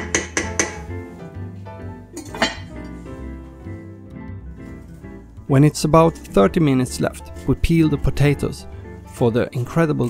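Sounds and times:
wooden spoon knocking on pot: 0.0 - 0.9
background music: 0.0 - 10.0.

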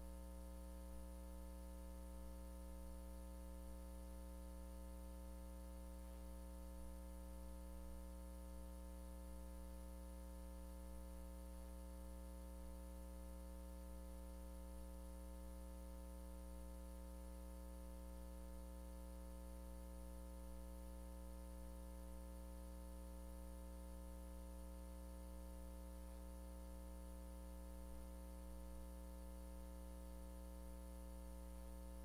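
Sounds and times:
electrical mains hum: 0.0 - 32.0.

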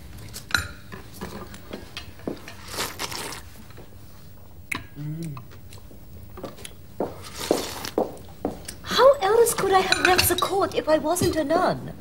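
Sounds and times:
cutlery and crockery clinking: 9.6 - 10.6.

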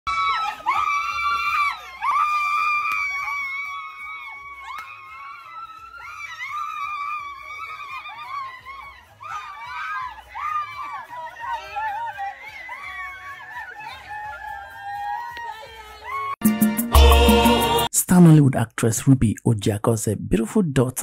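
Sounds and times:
girls screaming with joy: 0.1 - 16.4.

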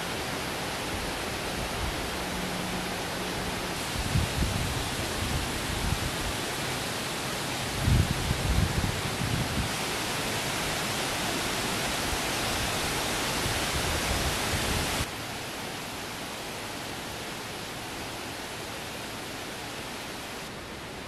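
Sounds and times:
wind through forest leaves: 0.0 - 21.0
wind buffeting microphone: 3.8 - 6.5, 7.7 - 9.9.

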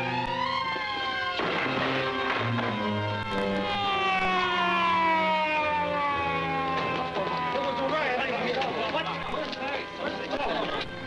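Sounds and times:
police siren winding down: 0.0 - 10.0.

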